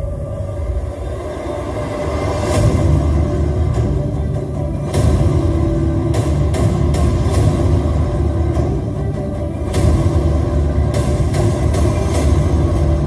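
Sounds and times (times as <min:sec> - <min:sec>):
dramatic background music: 0:00.0 - 0:13.0.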